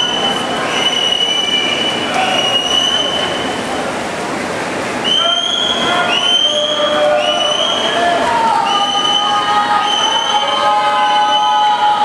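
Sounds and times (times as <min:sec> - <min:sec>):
crowd noise: 0:00.0 - 0:12.0
high-pitched cheering calls: 0:05.1 - 0:12.0.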